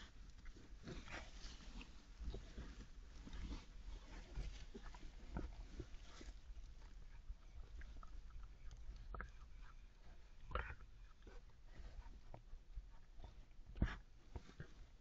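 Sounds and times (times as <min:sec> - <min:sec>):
animals rustling in straw: 0:00.0 - 0:08.0.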